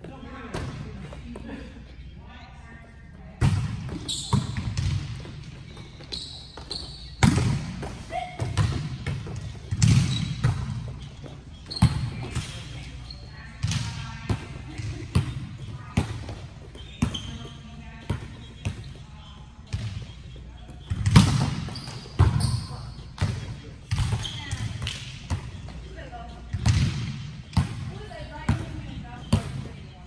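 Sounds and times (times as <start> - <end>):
volleyball smacks in a hall: 3.3 - 12.9, 20.8 - 25.8, 26.4 - 29.8
sneaker squeaks: 3.7 - 30.0.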